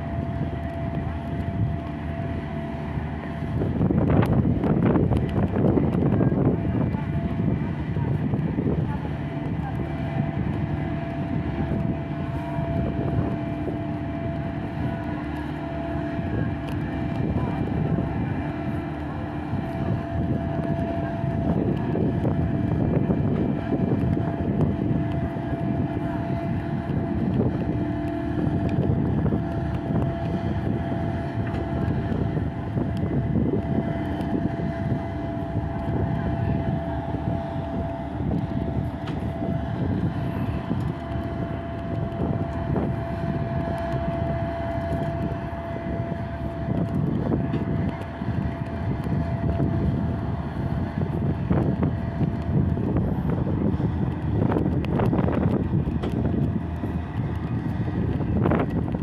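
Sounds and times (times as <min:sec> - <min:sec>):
crane diesel engine running: 0:00.0 - 0:59.0
steady whine: 0:00.0 - 0:59.0.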